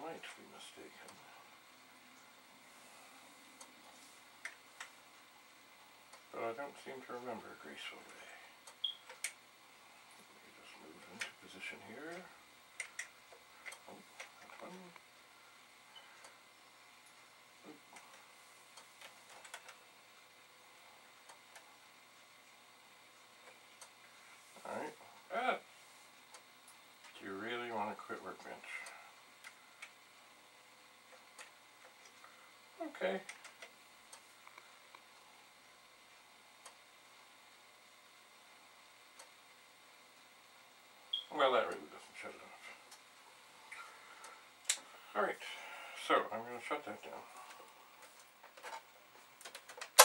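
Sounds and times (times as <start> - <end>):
room hum: 0.0 - 50.0.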